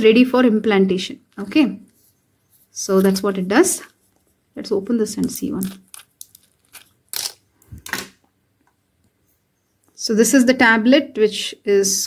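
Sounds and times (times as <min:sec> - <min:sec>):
foil tearing: 0:05.6 - 0:07.4.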